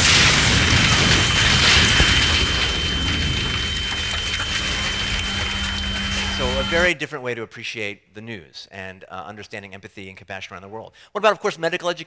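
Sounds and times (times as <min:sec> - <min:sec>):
loud rush of noise: 0:00.0 - 0:06.9
low steady hum: 0:00.1 - 0:06.9
thin high tone: 0:00.9 - 0:06.9.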